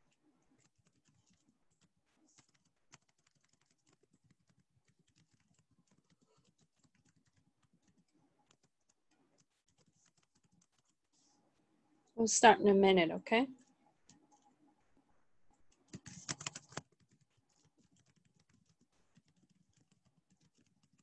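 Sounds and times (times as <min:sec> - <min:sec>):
faint keyboard typing: 0:00.0 - 0:12.2, 0:13.4 - 0:14.8, 0:15.5 - 0:21.0.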